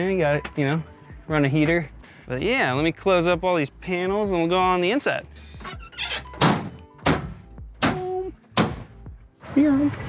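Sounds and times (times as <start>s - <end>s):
vehicle doors slamming shut: 6.3s - 9.0s.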